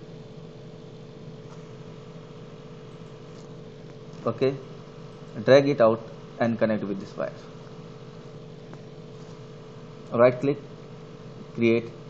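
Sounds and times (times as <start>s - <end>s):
background hum and hiss: 0.0s - 12.0s
faint constant tone: 0.0s - 12.0s.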